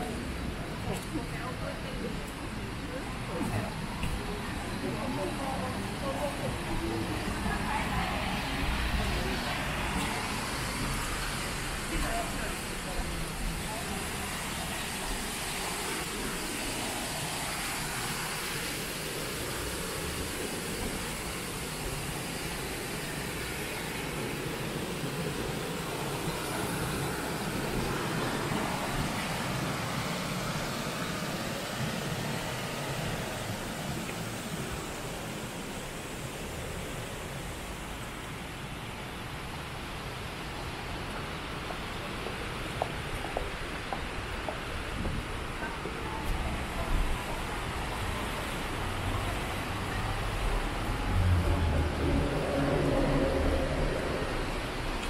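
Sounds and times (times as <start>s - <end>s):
people's voices: 0.0s - 17.6s
road traffic hiss: 0.0s - 55.0s.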